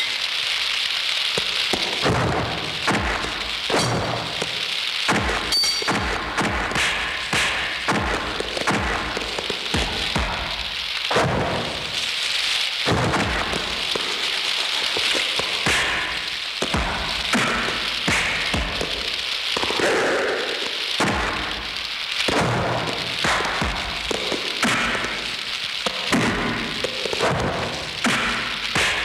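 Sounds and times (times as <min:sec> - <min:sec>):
fire roaring and crackling: 0:00.0 - 0:29.0
punch and kick impacts: 0:12.9 - 0:13.6.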